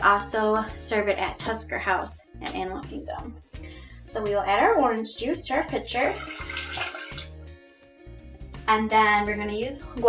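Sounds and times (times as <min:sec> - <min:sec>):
juice pouring into pitcher: 0:05.6 - 0:07.4.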